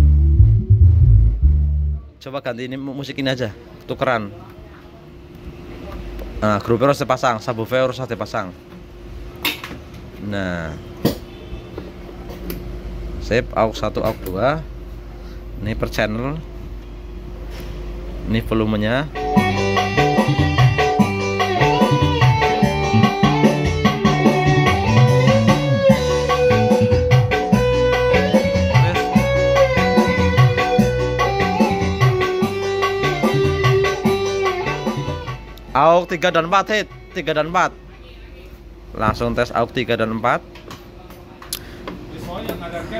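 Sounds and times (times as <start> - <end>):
guitar-led music over speakers: 0.0 - 2.1, 19.1 - 37.3.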